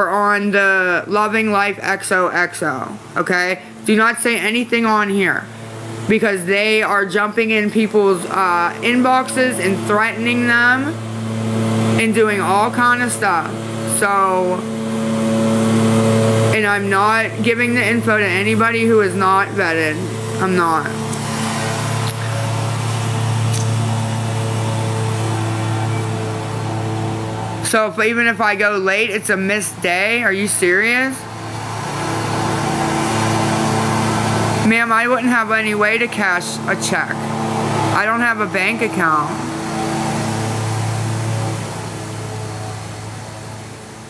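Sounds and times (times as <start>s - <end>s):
low machine hum: 0.0s - 44.0s.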